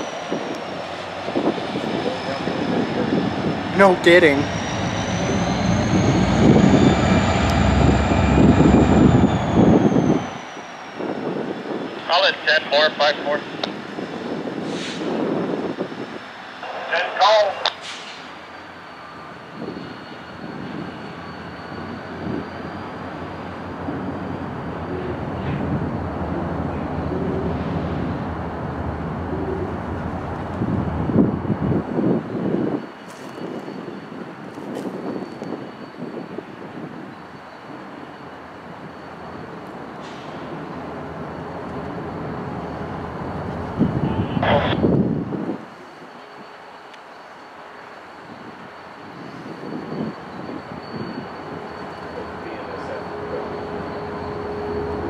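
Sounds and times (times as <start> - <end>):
locomotive engines rumbling: 0.0 - 55.0.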